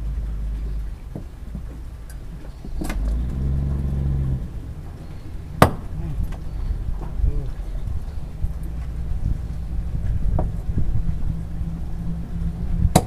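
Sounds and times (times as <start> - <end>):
low engine rumble: 0.0 - 13.0
cleaver chopping fish: 5.6 - 6.0.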